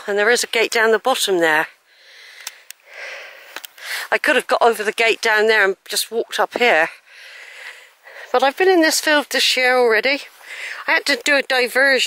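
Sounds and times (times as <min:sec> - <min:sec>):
person breathing: 0:01.8 - 0:04.1, 0:07.0 - 0:08.4, 0:10.3 - 0:10.9
small clicks: 0:02.4 - 0:02.8, 0:03.5 - 0:03.9.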